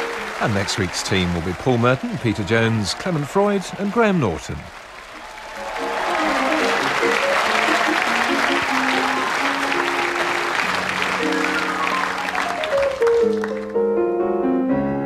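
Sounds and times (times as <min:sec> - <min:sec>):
audience applauding: 0:00.0 - 0:13.8
theme music: 0:05.6 - 0:15.0.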